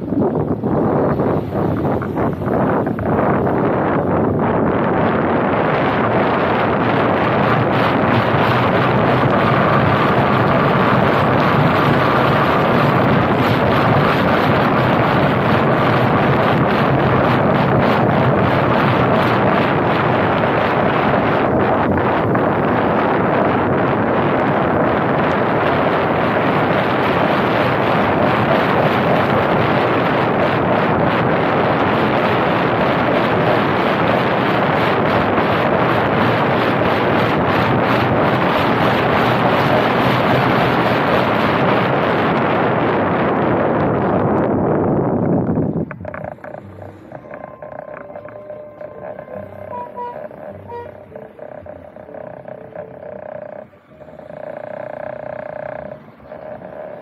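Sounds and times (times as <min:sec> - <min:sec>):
car road noise: 0:00.0 - 0:57.0
wind rushing over microphone: 0:00.0 - 0:57.0.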